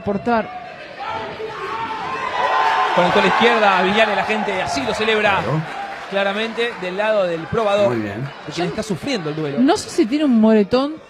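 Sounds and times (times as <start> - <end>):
crowd cheering and shouting: 0.0 - 10.4.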